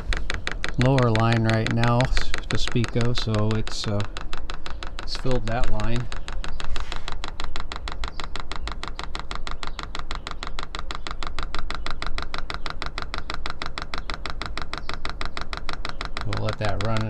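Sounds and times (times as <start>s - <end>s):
fuel pump ticking rapidly: 0.0s - 17.0s.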